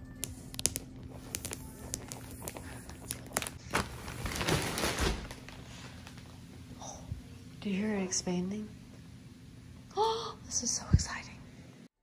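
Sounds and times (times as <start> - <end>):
plastic wrap crackling: 0.6 - 6.3
mattress expanding rustle: 3.5 - 5.8.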